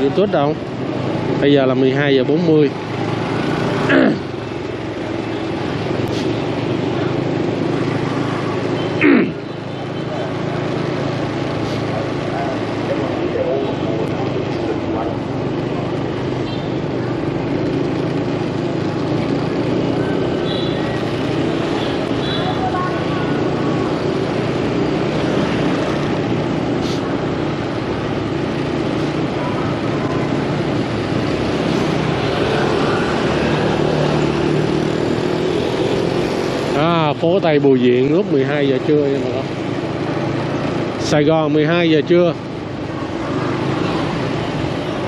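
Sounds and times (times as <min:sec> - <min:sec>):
motorbike engine running: 0:00.0 - 0:45.0
road and wind noise: 0:00.0 - 0:45.0.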